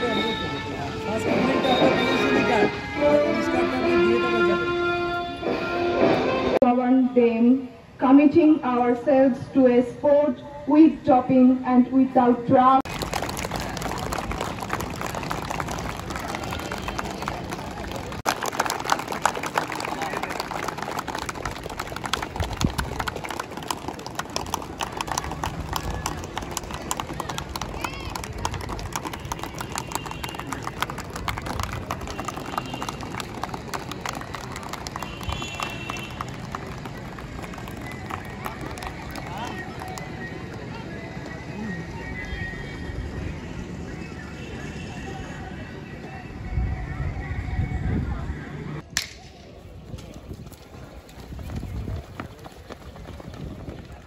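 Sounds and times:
voices chattering: 0:00.0 - 0:06.0, 0:12.0 - 0:54.0
small crowd clapping: 0:12.8 - 0:42.1.

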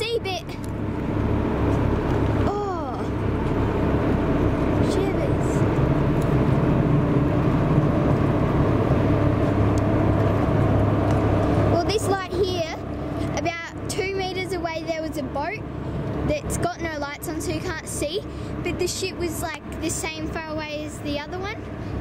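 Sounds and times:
boat engine droning: 0:00.0 - 0:22.0.

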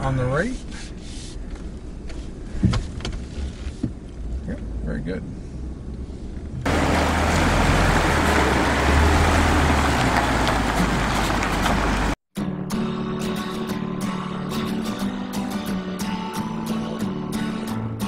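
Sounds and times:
truck cab rumble: 0:05.7 - 0:12.2
guitar music: 0:11.0 - 0:18.0.

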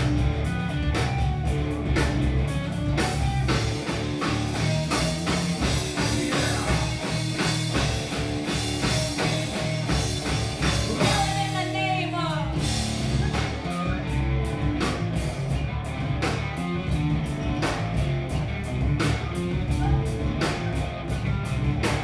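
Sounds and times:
drum kit beat: 0:00.0 - 0:22.0
electric guitars: 0:00.0 - 0:22.0.

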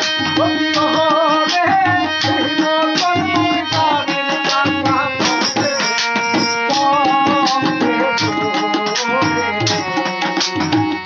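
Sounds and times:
person singing: 0:00.0 - 0:11.0
tabla drumming: 0:00.0 - 0:11.0
jingling hand tambourine: 0:00.8 - 0:11.0.

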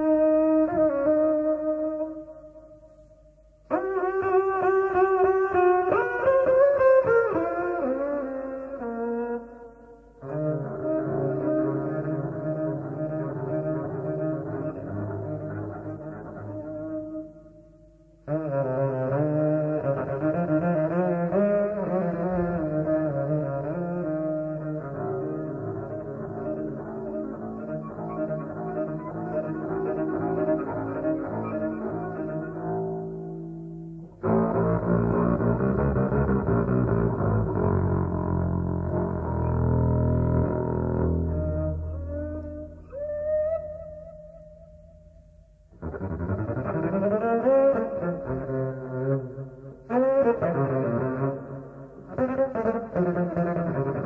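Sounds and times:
double bass: 0:18.2 - 0:54.0.

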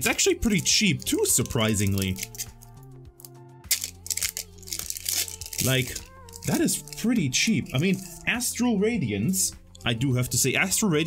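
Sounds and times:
quiet background music: 0:00.0 - 0:11.0
foil wrapper crinkling and tearing: 0:00.4 - 0:07.1.

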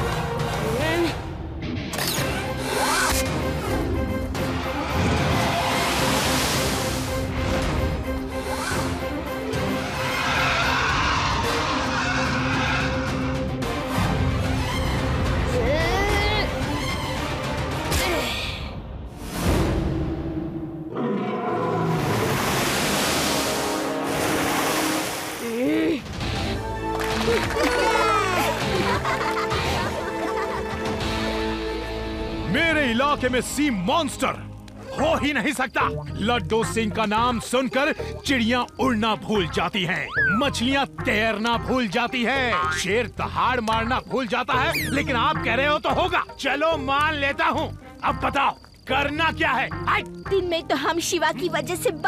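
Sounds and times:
cartoon background music: 0:00.0 - 0:20.1, 0:25.5 - 0:52.0
cartoon sound effects: 0:40.0 - 0:40.5, 0:42.5 - 0:42.9, 0:44.6 - 0:45.1.

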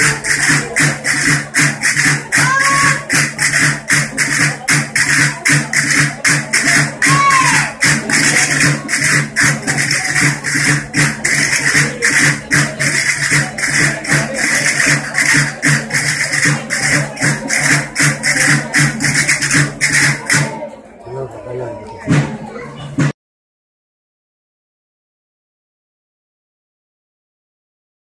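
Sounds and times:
drum beats: 0:00.0 - 0:23.2.

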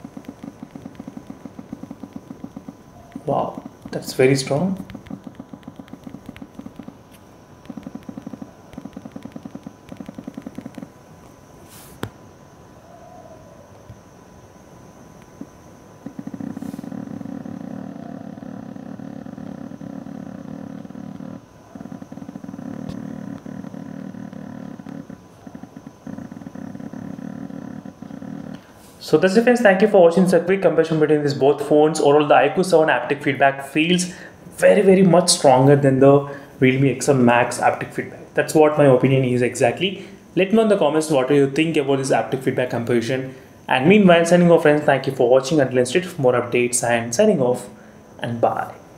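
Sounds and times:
phone vibration motor buzzing: 0:00.0 - 0:12.7, 0:13.5 - 0:47.5.

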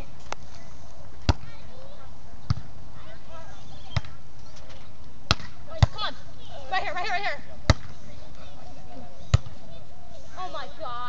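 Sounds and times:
hands smacking volleyball: 0:05.3 - 0:06.0.

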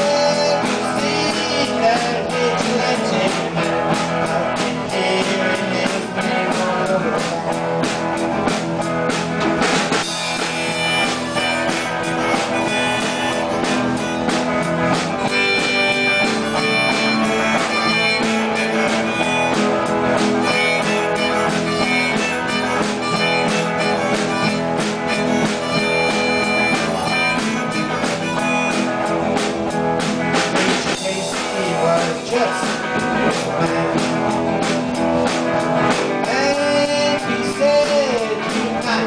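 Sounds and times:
drum kit: 0:00.0 - 0:39.0
electric guitars: 0:00.0 - 0:39.0.

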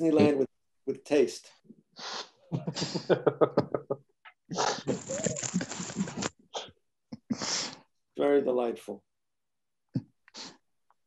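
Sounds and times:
breathy laugh: 0:02.5 - 0:06.3
men laughing: 0:02.5 - 0:06.3.

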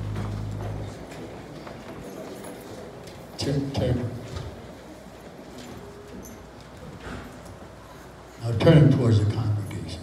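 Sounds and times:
footsteps on stage: 0:00.0 - 0:07.6.

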